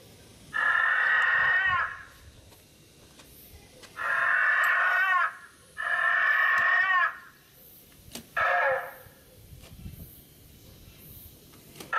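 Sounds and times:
dinosaur roar screeching calls: 0.5 - 2.2, 4.0 - 7.4, 8.4 - 9.0.

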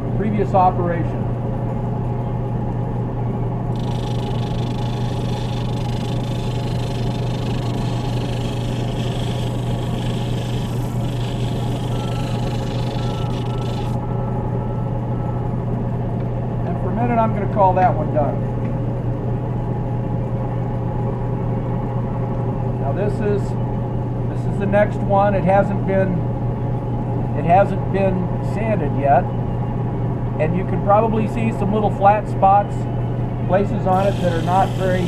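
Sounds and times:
sander motor humming: 3.7 - 14.0, 33.9 - 35.0
stone scratching on sanding disc: 3.8 - 14.0, 34.0 - 35.0.

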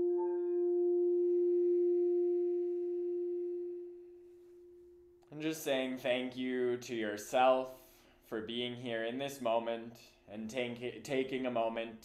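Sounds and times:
chanted note: 0.0 - 5.2.

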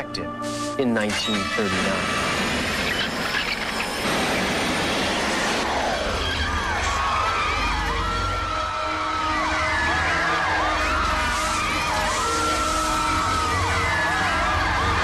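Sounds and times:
loud rushing crashing din: 1.7 - 7.6
people screaming and whooping: 5.0 - 15.0.

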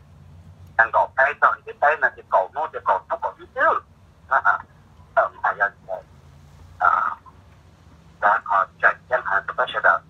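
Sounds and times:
person talking: 0.8 - 6.0, 6.8 - 7.3, 8.2 - 10.0.

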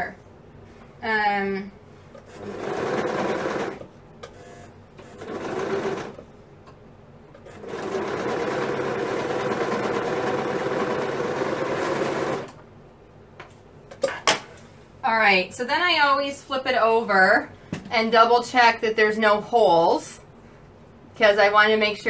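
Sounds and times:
overlock sewing machine stitching: 2.3 - 6.2, 7.4 - 12.6.

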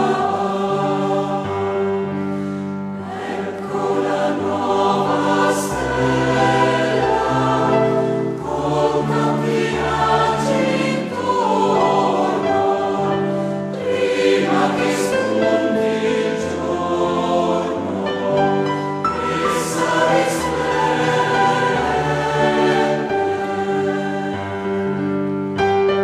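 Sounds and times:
choir singing slow chords: 0.0 - 26.0.

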